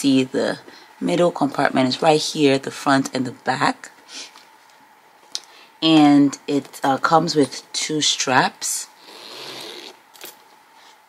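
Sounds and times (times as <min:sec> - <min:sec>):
metal zipper pulled open: 0:09.0 - 0:10.4.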